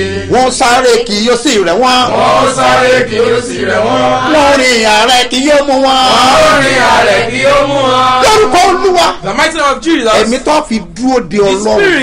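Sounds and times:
man chanting: 0.0s - 2.6s, 3.8s - 9.3s
steady low hum: 0.0s - 11.0s.

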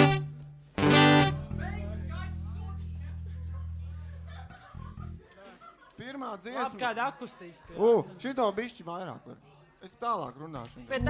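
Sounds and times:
acoustic guitar chord strum: 0.0s - 1.6s.

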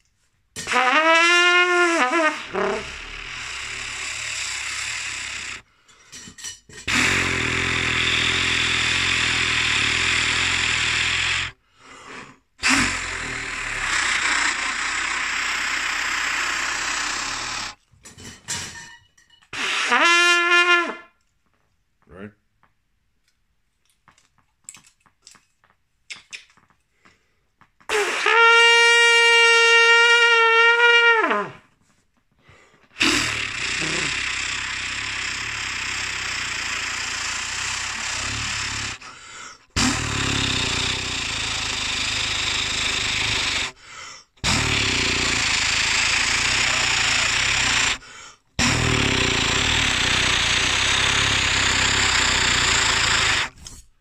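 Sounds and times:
trumpet played badly: 0.6s - 3.4s, 19.6s - 21.2s, 27.9s - 31.7s.

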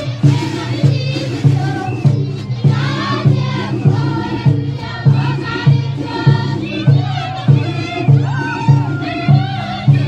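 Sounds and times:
many voices singing together: 0.0s - 10.0s
steady low drum beat: 0.0s - 10.0s.

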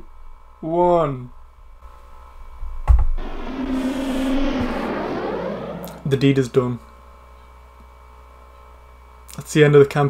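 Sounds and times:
swirling whooshing noise: 3.2s - 6.6s.

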